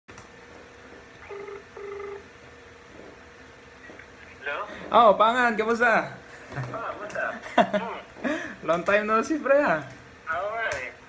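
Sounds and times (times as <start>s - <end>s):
telephone ringing: 1.2s - 2.3s.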